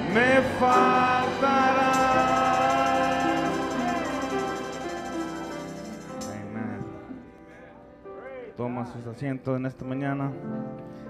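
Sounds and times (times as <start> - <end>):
congregation singing worship song: 0.0 - 6.5
instrumental backing: 0.0 - 8.2.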